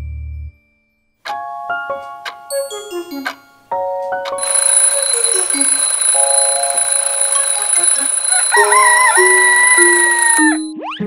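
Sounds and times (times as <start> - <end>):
children's music: 1.3 - 11.0
alarm clock ringing: 4.4 - 10.7.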